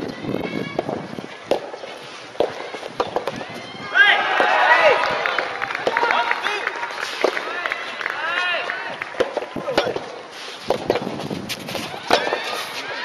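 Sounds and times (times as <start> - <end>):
tennis balls struck popping: 0.8 - 3.5, 7.1 - 7.5, 9.0 - 12.5
crowd shouting and cheering: 2.4 - 10.1, 11.8 - 13.0.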